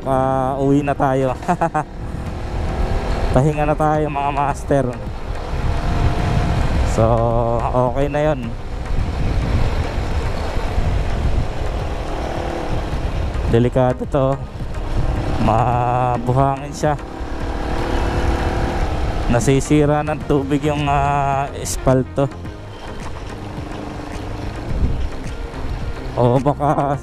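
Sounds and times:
motorcycle engine hum: 0:00.0 - 0:27.0
wind rush over microphone: 0:01.8 - 0:21.2, 0:23.5 - 0:26.2.

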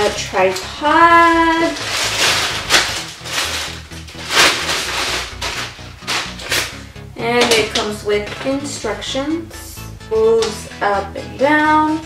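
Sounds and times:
plastic bag crinkling: 0:00.0 - 0:08.8
background music: 0:00.0 - 0:12.0.

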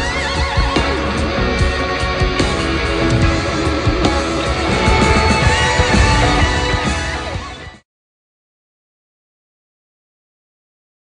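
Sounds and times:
bass guitar: 0:00.0 - 0:07.8
drums: 0:00.0 - 0:07.8
electric guitar with vibrato: 0:00.0 - 0:07.8.

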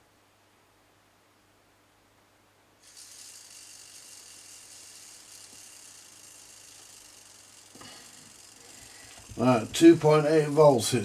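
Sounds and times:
small electric motor whirring: 0:02.8 - 0:11.0.

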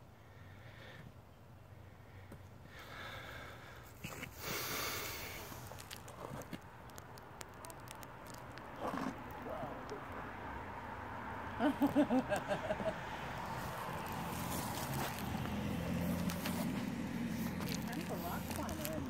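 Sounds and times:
breathing: 0:00.2 - 0:01.2, 0:01.8 - 0:05.8
breathy hiss: 0:02.6 - 0:06.5.

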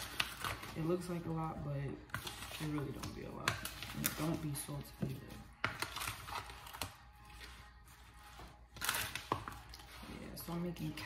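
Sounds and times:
spatula stirring raw chicken: 0:02.0 - 0:11.0.

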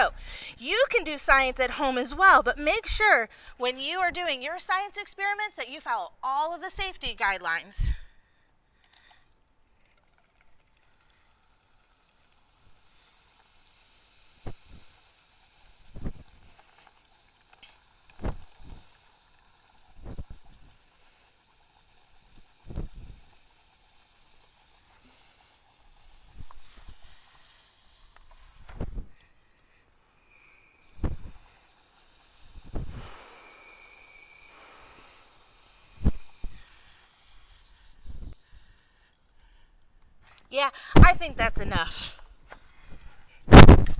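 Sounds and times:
liquid nitrogen hissing: 0:00.0 - 0:07.8, 0:08.8 - 0:39.8, 0:40.4 - 0:43.9.

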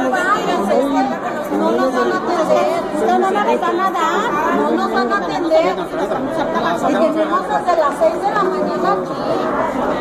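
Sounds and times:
overlapping crowd chatter: 0:00.0 - 0:10.0.

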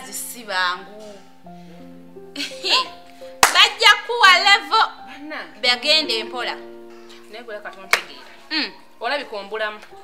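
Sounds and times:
background keyboard music: 0:00.0 - 0:10.0
hand clap: 0:03.4 - 0:03.7, 0:07.9 - 0:08.2.

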